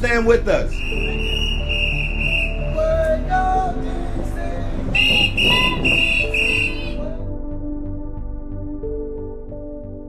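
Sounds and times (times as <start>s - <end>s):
background music: 0.0s - 10.0s
whistle short high blasts: 0.7s - 2.6s, 5.0s - 7.0s.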